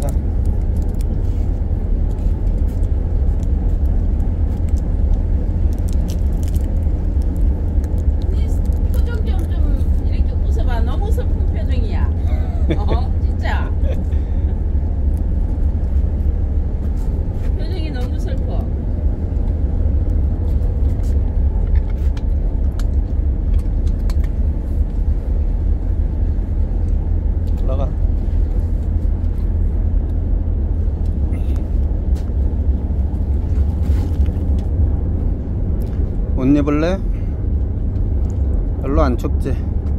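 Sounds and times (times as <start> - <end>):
ship engine drone: 0.0 - 39.9.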